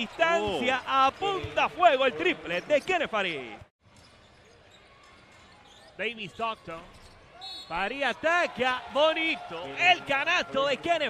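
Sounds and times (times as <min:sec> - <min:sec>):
low arena background: 0:00.0 - 0:11.0.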